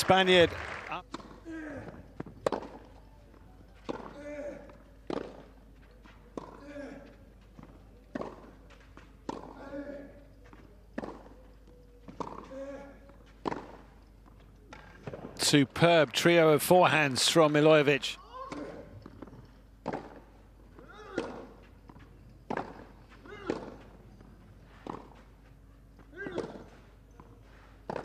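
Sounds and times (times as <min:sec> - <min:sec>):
racket striking tennis ball: 0:01.1 - 0:02.9, 0:03.8 - 0:05.6, 0:08.1 - 0:11.4, 0:12.1 - 0:13.9, 0:18.5 - 0:24.0, 0:24.7 - 0:25.3, 0:26.1 - 0:26.8.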